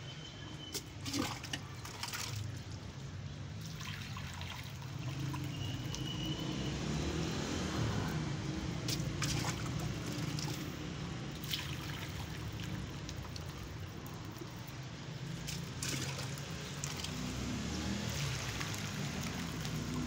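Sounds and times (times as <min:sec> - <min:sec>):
liquid trickling: 0:00.6 - 0:06.6, 0:08.5 - 0:20.0.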